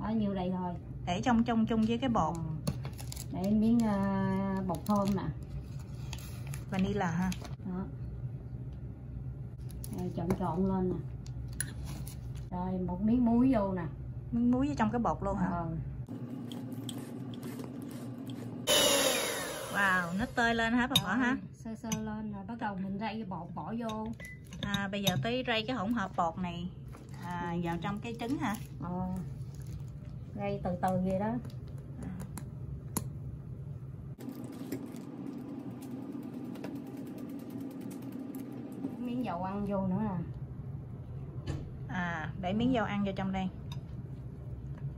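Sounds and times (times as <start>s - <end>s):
electric hand mixer whirring: 18.7s - 20.4s.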